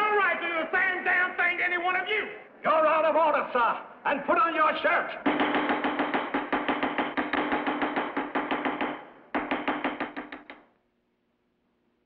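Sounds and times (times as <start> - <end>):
gavel rapping on block: 5.2 - 10.6.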